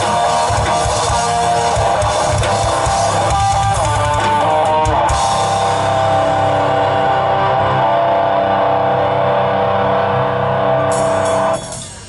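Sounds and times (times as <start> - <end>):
distorted guitar chord ringing: 0.0 - 12.0.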